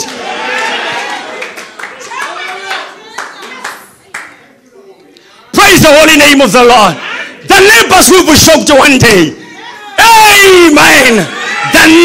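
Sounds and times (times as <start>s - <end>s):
congregation clapping: 0.9s - 4.4s.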